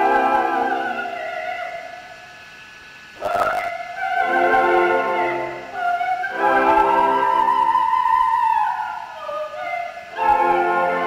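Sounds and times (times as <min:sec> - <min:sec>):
opera singing with orchestra: 0:00.0 - 0:02.2, 0:03.2 - 0:11.0.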